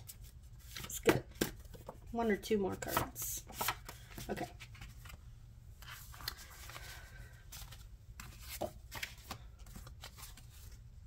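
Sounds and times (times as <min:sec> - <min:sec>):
paper cards rustling and tapping: 0:00.0 - 0:10.8.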